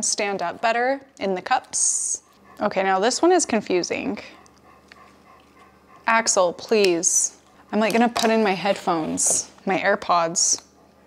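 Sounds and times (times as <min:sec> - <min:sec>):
dog heavy breathing: 0:02.2 - 0:03.0, 0:04.0 - 0:09.4.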